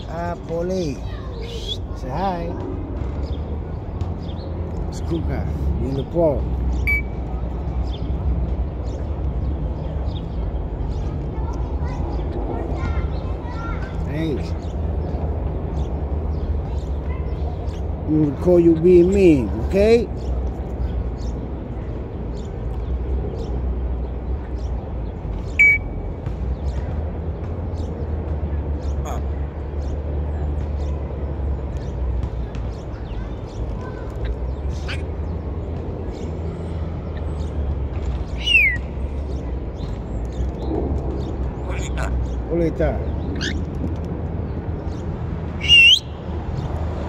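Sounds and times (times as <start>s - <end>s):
parrot whistle: 6.8s - 7.2s, 25.6s - 26.0s, 38.4s - 38.8s, 45.6s - 46.2s
steady low rumble: 20.2s - 45.6s.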